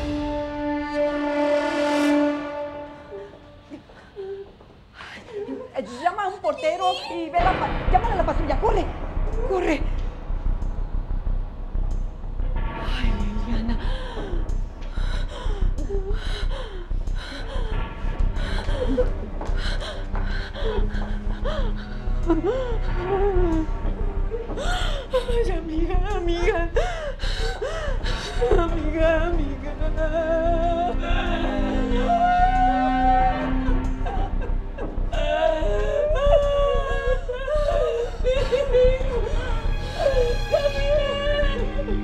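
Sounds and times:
dramatic held music note: 0:00.0 - 0:03.8
dramatic music: 0:00.0 - 0:04.4, 0:07.3 - 0:42.0
women gasping and sobbing: 0:13.7 - 0:25.4, 0:26.7 - 0:28.7, 0:33.0 - 0:42.0.

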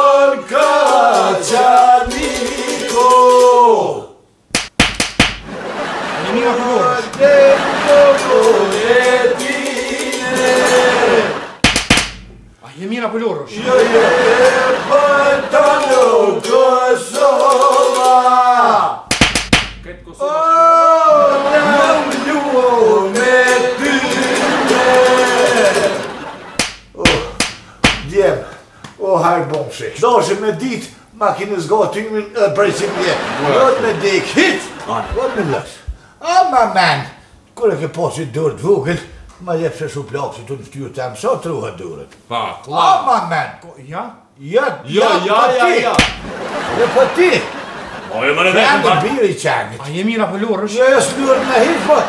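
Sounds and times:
men singing a chant: 0:00.0 - 0:03.8, 0:06.2 - 0:11.5, 0:13.5 - 0:19.0, 0:20.4 - 0:26.2
quick sharp hand slaps: 0:04.5 - 0:05.5, 0:11.6 - 0:12.3, 0:19.1 - 0:19.9, 0:26.6 - 0:28.2, 0:45.9 - 0:46.4
plucked lute: 0:19.6 - 0:20.2
man singing drawn-out line: 0:20.3 - 0:26.0.

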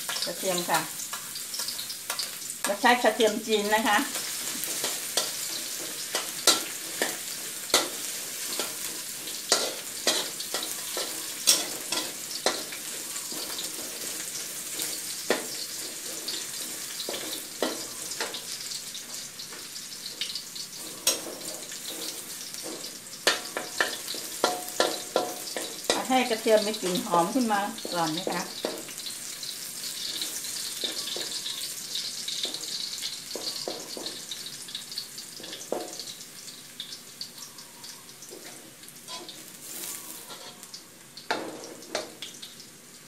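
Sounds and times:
garlic sizzling in oil: 0:00.0 - 0:43.0
metal spatula scraping wok: 0:00.1 - 0:34.8, 0:38.2 - 0:40.7.

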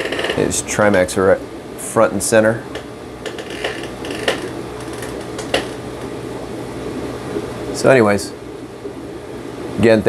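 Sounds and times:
small clicks: 0:02.8 - 0:06.1
air pump hum: 0:03.3 - 0:06.2
sponge filter bubbling: 0:03.3 - 0:09.6.

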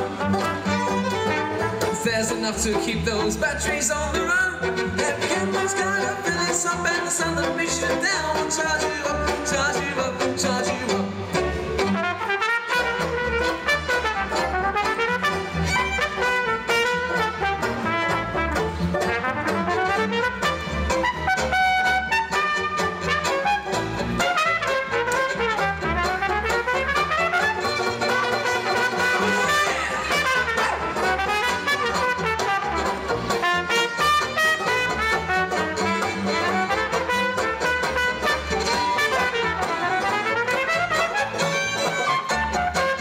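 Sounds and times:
trumpet: 0:00.0 - 0:02.0, 0:11.8 - 0:43.0
banjo: 0:00.0 - 0:43.0
upright double bass: 0:00.0 - 0:43.0
violin: 0:00.0 - 0:43.0.

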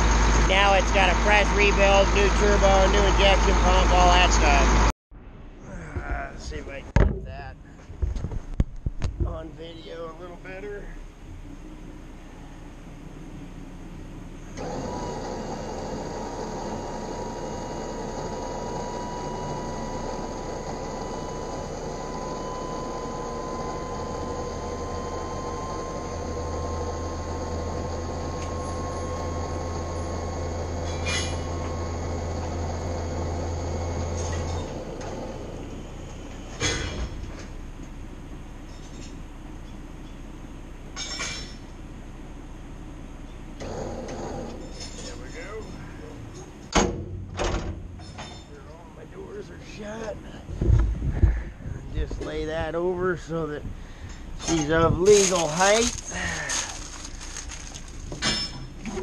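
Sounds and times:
hydraulic whine: 0:00.0 - 0:05.6, 0:10.0 - 0:41.8, 0:43.1 - 0:48.5
deep engine hum: 0:00.0 - 0:48.0, 0:48.6 - 0:59.0
sharp metal clank: 0:30.8 - 0:31.5, 0:41.0 - 0:41.7, 0:46.4 - 0:48.6, 0:58.2 - 0:58.9.

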